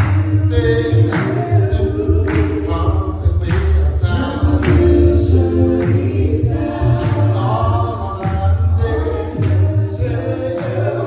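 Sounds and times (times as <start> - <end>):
vocal group singing in harmony: 0.0 - 11.0.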